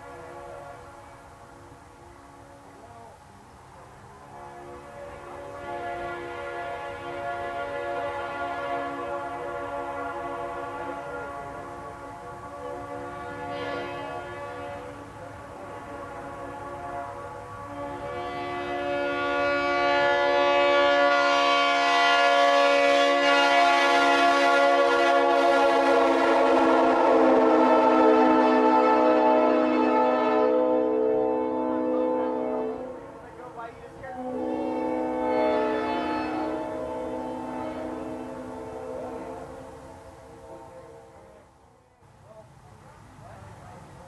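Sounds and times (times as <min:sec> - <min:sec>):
locomotive horn chord: 0:00.0 - 0:42.3.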